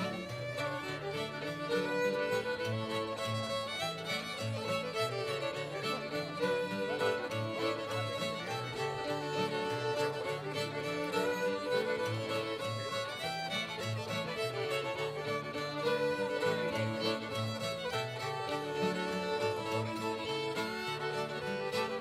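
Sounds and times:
fiddles playing lively tune: 0.0s - 22.0s
strummed acoustic guitar: 0.0s - 22.0s.

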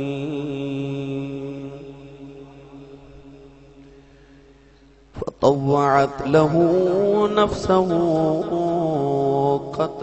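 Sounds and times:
man chanting recitation: 0.0s - 3.8s, 5.2s - 10.0s.

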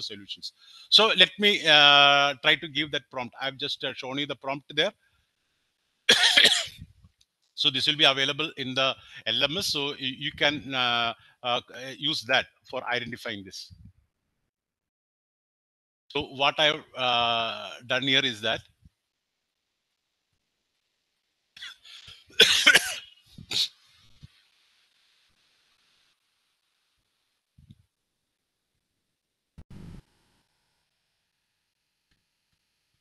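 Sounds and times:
man coughing: 6.1s - 6.8s, 21.6s - 23.7s.

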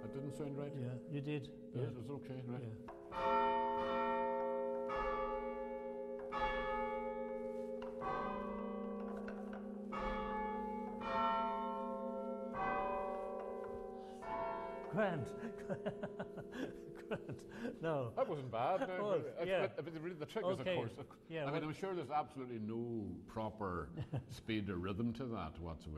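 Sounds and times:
church bells chiming a slow tune: 0.0s - 17.9s.

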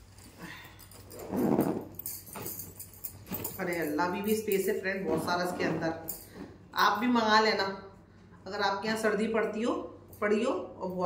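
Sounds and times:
cloth bag rustling: 0.0s - 6.7s
zipper closing: 0.9s - 3.9s, 5.0s - 6.6s.

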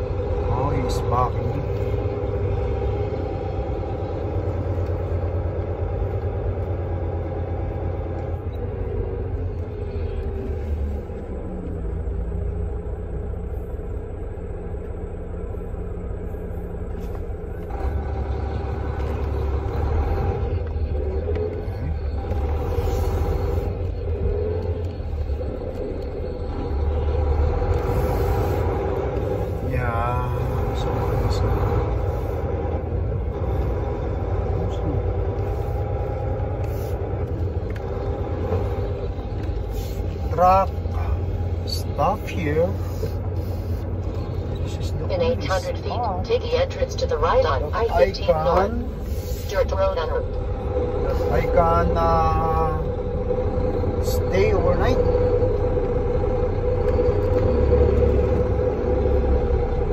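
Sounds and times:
diesel truck engine rumbling: 0.0s - 59.9s.

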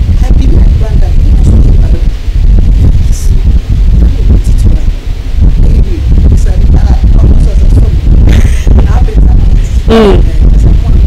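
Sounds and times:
low rumble on microphone: 0.0s - 11.0s
woman speaking into a microphone: 0.0s - 11.0s.

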